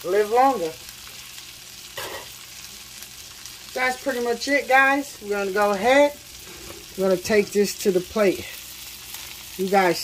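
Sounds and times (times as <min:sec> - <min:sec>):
butter sizzling in a skillet: 0:00.0 - 0:10.0.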